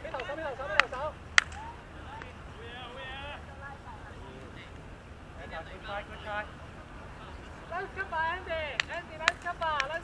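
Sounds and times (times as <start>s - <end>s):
distant players calling out: 0.0s - 10.0s.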